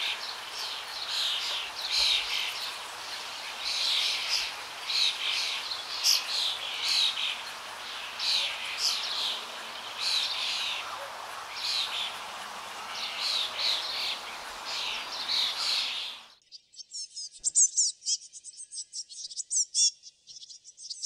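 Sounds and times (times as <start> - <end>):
birds chirping: 0.0 - 16.4.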